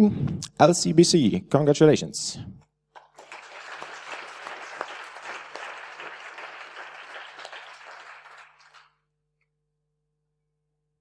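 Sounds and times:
audience applauding: 3.0 - 9.0.

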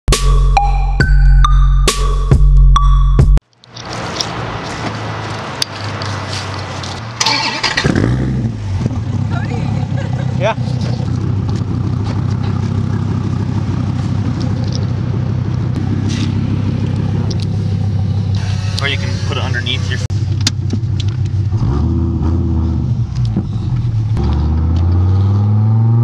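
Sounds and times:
car engine starting and idling: 3.6 - 25.7.

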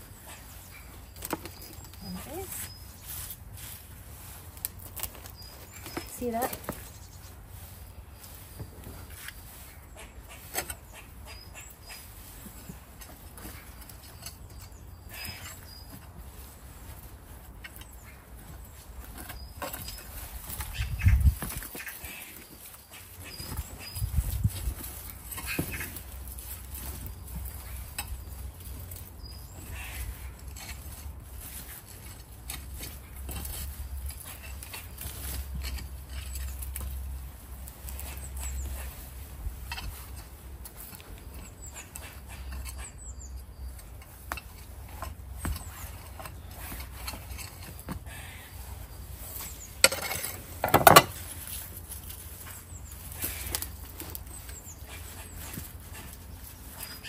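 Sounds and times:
trowel scraping compost: 0.0 - 57.0.

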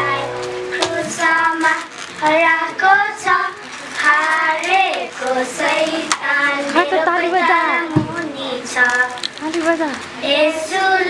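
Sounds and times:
music with held notes: 0.0 - 3.5
children singing into microphone: 0.0 - 9.4, 10.0 - 11.0.

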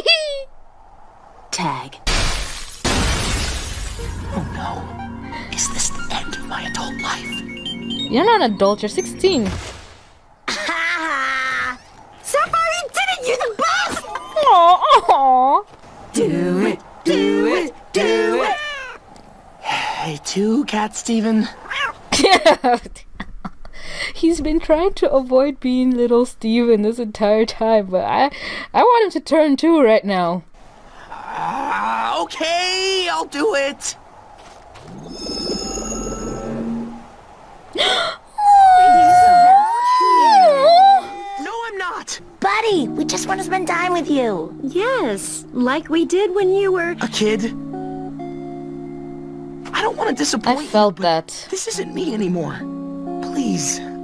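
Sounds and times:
cartoon voices saying aww: 17.1 - 19.0, 31.0 - 32.2, 37.8 - 41.6
person groaning: 31.0 - 31.9, 34.9 - 37.0.

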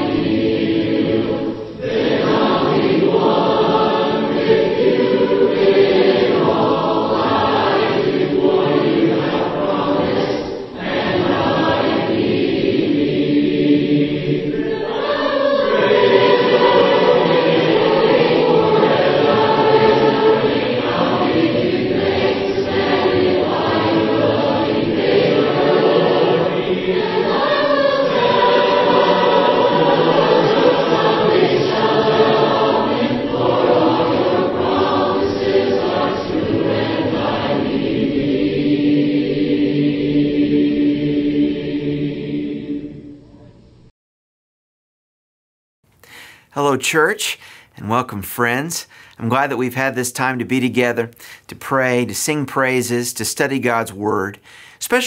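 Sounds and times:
group singing a hymn in harmony: 0.0 - 43.5.

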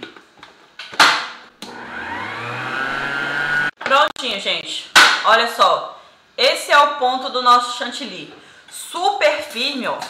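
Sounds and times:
stand mixer motor whisking cream: 1.6 - 3.8.

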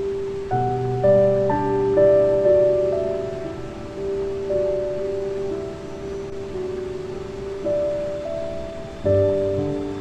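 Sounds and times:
slow soft piano music: 0.0 - 10.0
steady background hiss: 0.0 - 10.0.

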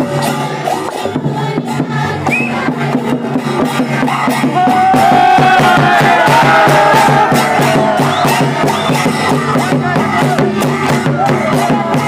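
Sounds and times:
crowd: 0.0 - 12.0
drums beating steady rhythm: 0.0 - 12.0
voices singing: 0.0 - 12.0.

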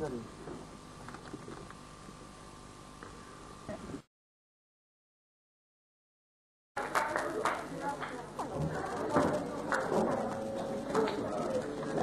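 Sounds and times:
indistinct voices: 7.2 - 12.0.

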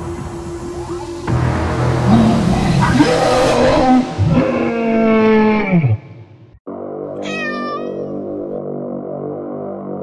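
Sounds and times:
cat meow: 7.2 - 8.1.

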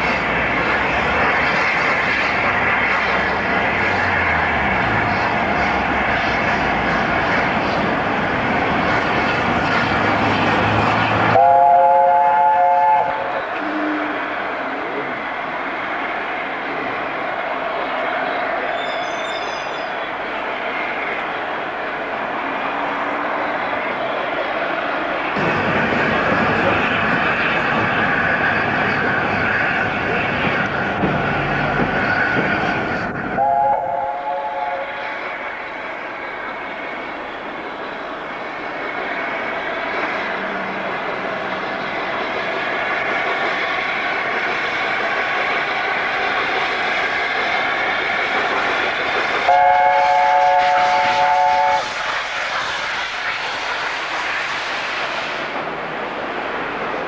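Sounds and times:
steam locomotive exhaust: 0.0 - 15.2, 25.3 - 37.2, 38.6 - 55.8
steam whistle chime: 49.5 - 51.8.

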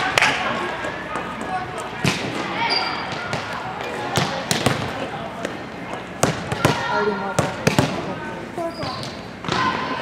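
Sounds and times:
volleyball bouncing on gym floor: 1.1 - 8.1.

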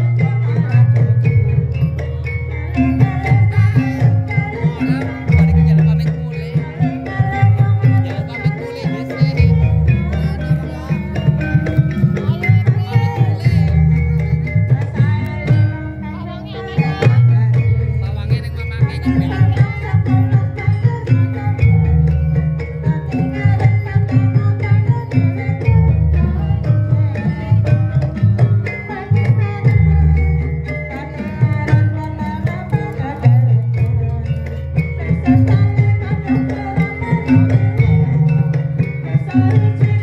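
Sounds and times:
hand drums beating: 0.0 - 40.0
ringing pitched percussion: 0.0 - 40.0
sustained melodic tones: 0.0 - 40.0
wavering melodic line: 0.0 - 40.0.

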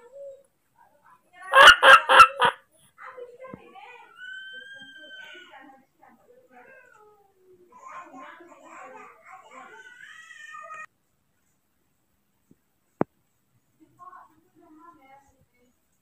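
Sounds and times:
baby monkey crying: 1.5 - 2.6.

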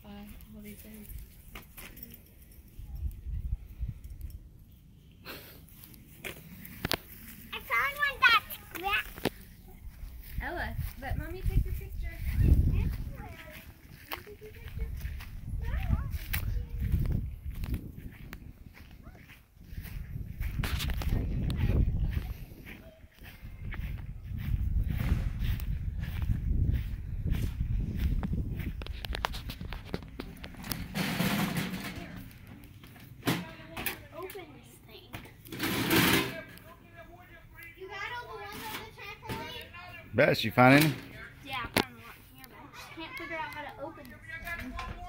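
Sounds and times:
people talking indistinctly: 7.5 - 17.6
low microphone rumble: 23.5 - 29.0.

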